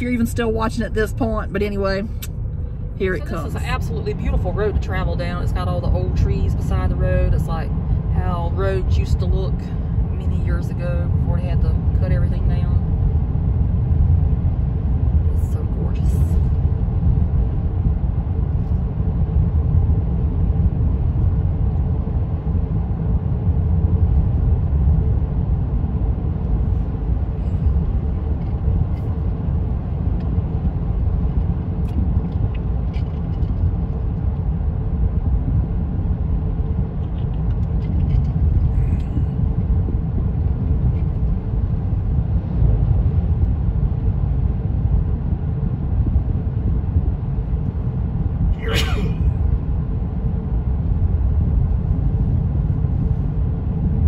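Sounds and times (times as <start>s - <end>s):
car interior road rumble: 0.0s - 54.0s.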